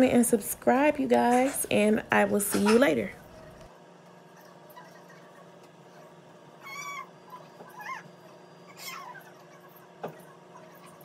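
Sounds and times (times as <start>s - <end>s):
small pet high-pitched calls: 6.6s - 8.1s.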